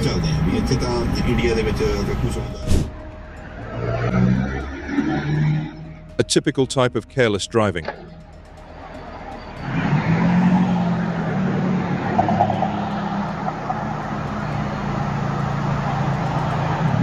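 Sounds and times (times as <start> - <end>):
vehicle engine running: 0.0 - 4.8, 7.9 - 17.0.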